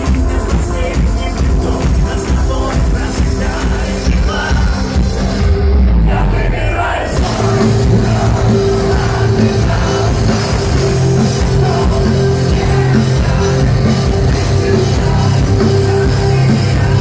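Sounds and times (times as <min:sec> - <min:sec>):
bass-heavy electronic intro: 0:00.0 - 0:17.0
metal band playing: 0:00.0 - 0:17.0.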